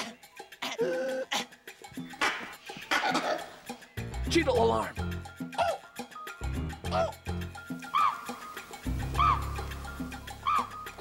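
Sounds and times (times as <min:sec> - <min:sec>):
monkey alarm barks: 0:07.8 - 0:08.4, 0:09.1 - 0:09.6, 0:10.4 - 0:11.0.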